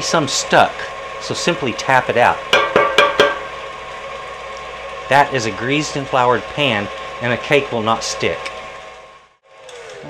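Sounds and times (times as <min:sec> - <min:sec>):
electric mixer humming: 0:00.0 - 0:10.0
metal cake pan knocking on wood: 0:02.5 - 0:03.4.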